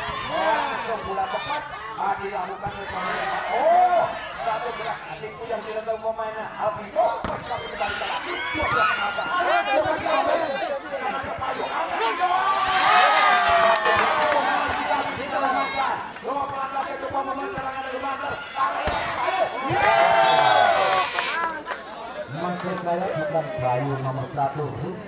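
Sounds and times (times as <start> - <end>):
spectators shouting and chattering: 0.0 - 25.0.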